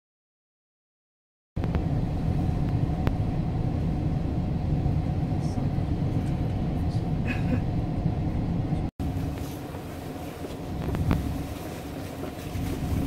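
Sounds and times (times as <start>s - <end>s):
train rumble inside carriage: 1.6s - 13.0s.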